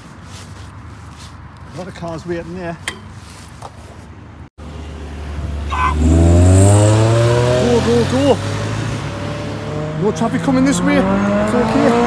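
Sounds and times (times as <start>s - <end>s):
car engine accelerating: 4.6s - 12.0s.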